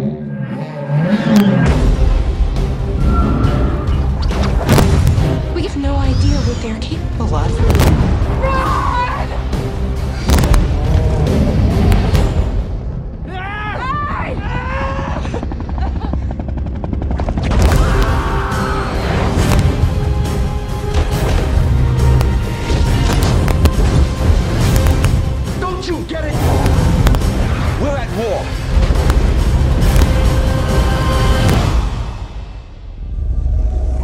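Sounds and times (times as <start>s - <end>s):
trailer music: 0.0s - 13.5s, 15.4s - 34.0s
sharp booming hits: 4.5s - 5.6s, 7.5s - 8.4s
man and woman yelling and cheering: 13.2s - 15.2s
helicopter rotor chopping: 14.4s - 31.8s.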